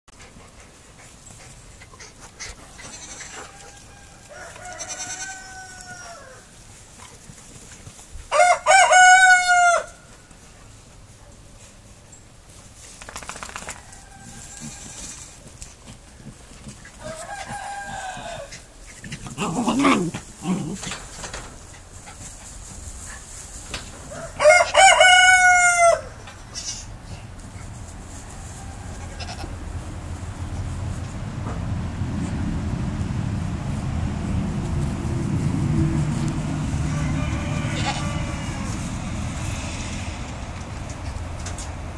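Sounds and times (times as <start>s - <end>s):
baby goat bleating: 2.8s - 3.3s, 29.2s - 29.5s, 37.7s - 38.8s
loud drawn-out animal call: 4.6s - 6.3s, 29.0s - 29.6s, 36.7s - 40.0s.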